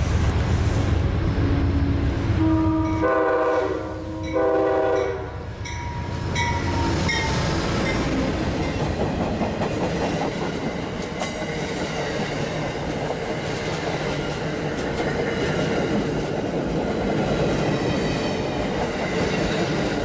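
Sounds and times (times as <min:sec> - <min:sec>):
diesel locomotive passing: 0:00.0 - 0:20.0
train wheels rushing on rails: 0:00.0 - 0:20.0
train horn: 0:01.4 - 0:05.5.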